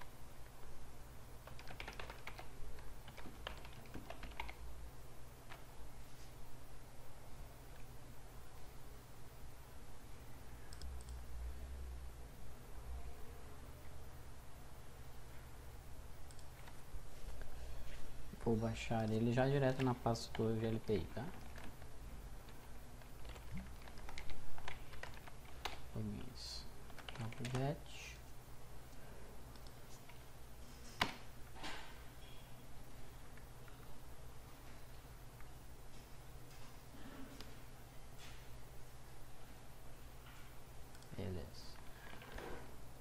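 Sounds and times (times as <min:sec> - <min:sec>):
computer keyboard typing: 0:01.4 - 0:04.6, 0:16.2 - 0:16.8, 0:19.0 - 0:27.8.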